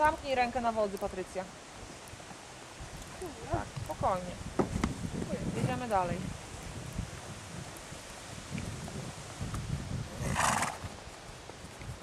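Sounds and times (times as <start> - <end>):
horse hooves on sand: 0.0 - 12.0
horse snorting: 10.1 - 11.0.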